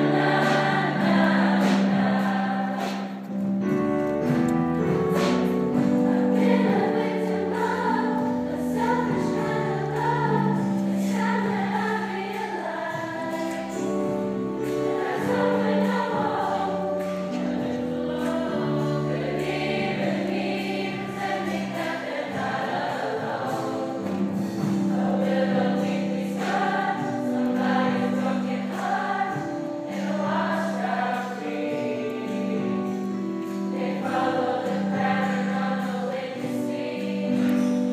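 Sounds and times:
grand piano: 0.0 - 37.9
mixed choir singing in harmony: 0.0 - 37.9.

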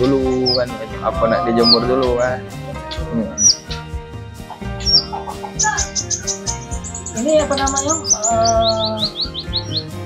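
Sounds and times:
bird twittering: 0.0 - 10.0
bird chips: 4.5 - 10.0.

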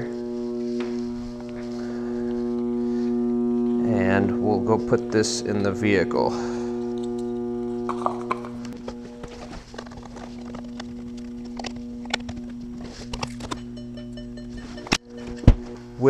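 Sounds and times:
shuffling footsteps: 0.0 - 5.2, 8.7 - 13.1
battery charger electrical hum: 0.0 - 16.0.

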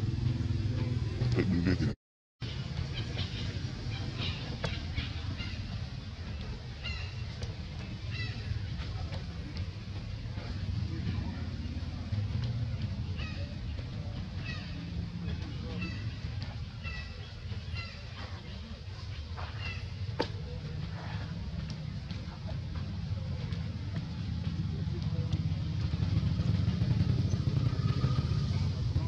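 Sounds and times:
low vehicle rumble: 0.0 - 29.0.

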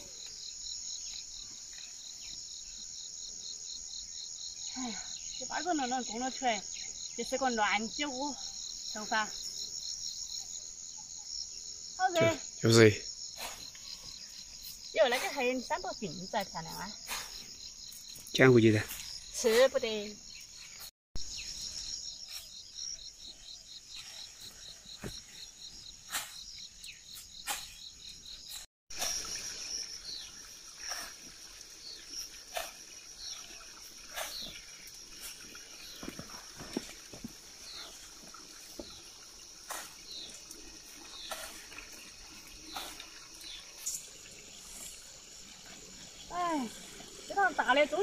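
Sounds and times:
insects chirping: 0.0 - 48.0.

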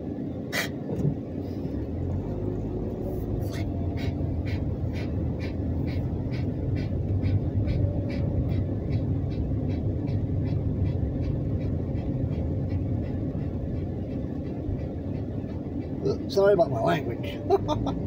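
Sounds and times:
car engine and road rumble: 0.0 - 18.0
regular ticking: 2.5 - 18.0.

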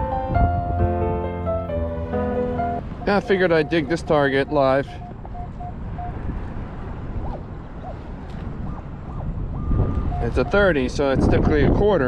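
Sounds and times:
wind rumble on microphone: 0.0 - 1.4, 2.5 - 12.0
metal detector tones: 3.0 - 6.2.

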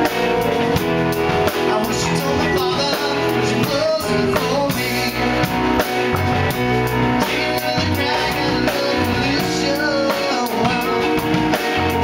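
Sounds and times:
live rock band: 0.0 - 12.0.

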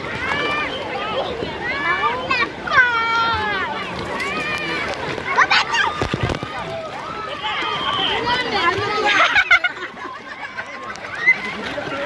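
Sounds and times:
children calling out: 0.0 - 12.0
water splashing: 0.0 - 12.0.

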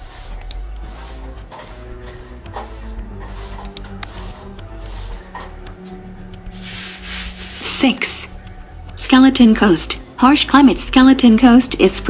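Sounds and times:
scratchy hiss: 0.0 - 8.3
quiet background music: 0.0 - 12.0.

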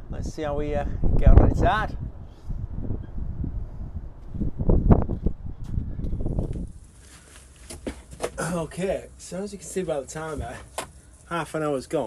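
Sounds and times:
muffled rustling on microphone: 2.6 - 8.4, 9.3 - 11.3.

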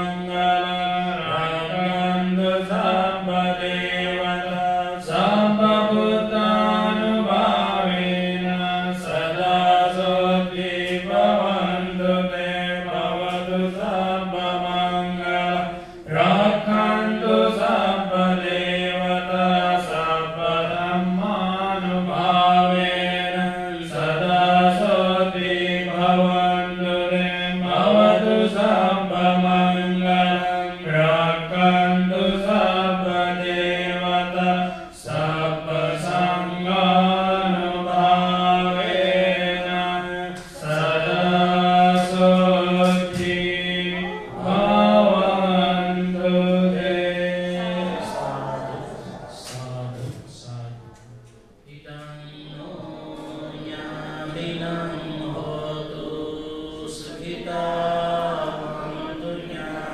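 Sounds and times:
person chanting: 0.0 - 59.9.

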